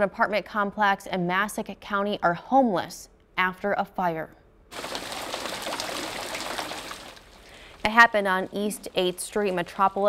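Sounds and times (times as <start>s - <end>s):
water spray hissing and splattering: 4.7s - 10.0s.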